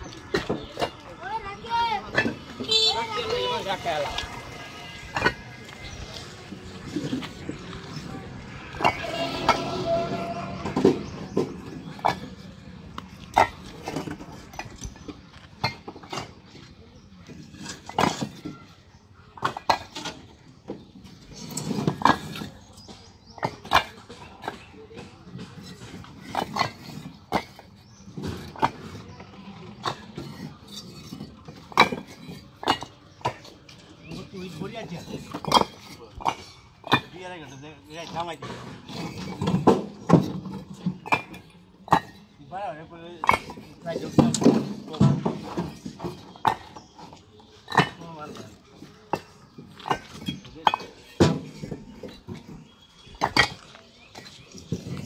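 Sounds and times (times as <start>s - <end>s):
bricks clinking and knocking: 0.0s - 1.0s, 2.1s - 9.7s, 10.6s - 42.4s, 43.1s - 55.0s.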